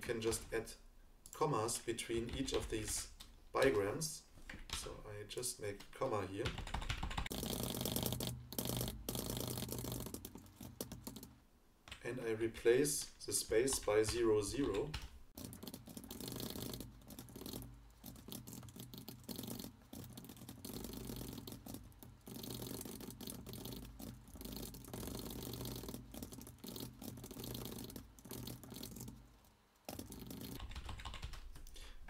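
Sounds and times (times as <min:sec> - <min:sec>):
typing on keyboard: 0:06.4 - 0:11.3, 0:13.5 - 0:29.2, 0:29.9 - 0:31.8.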